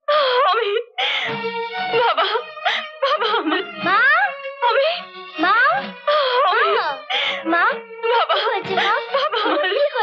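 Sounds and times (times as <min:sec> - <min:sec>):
woman wailing and crying: 0:00.1 - 0:10.0
held musical note: 0:01.3 - 0:10.0.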